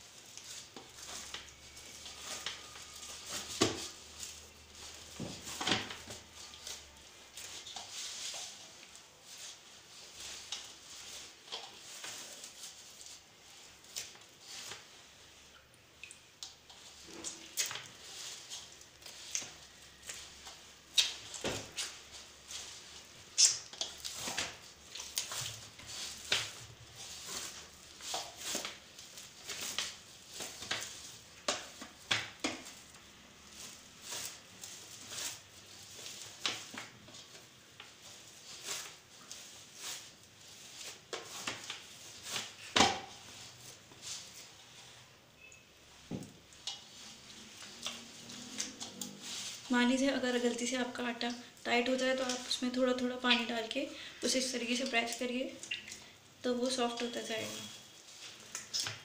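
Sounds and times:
dough pressing and slapping: 0.3s - 44.5s.

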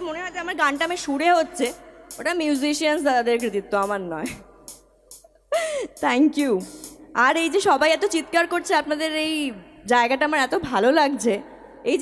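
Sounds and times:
woman speaking into a microphone: 0.0s - 4.4s, 6.0s - 12.0s
woman gasping: 5.4s - 6.0s.

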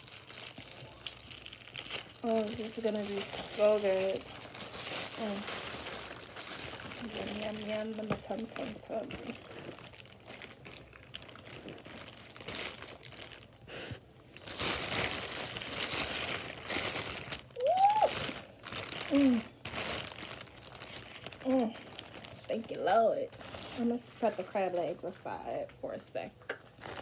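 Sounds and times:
crinkling crunching rustle of food: 0.0s - 27.0s.

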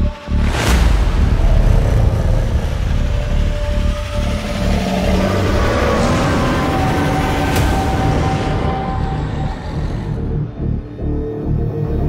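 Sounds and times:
trailer music with pulsing beat: 0.0s - 12.0s.

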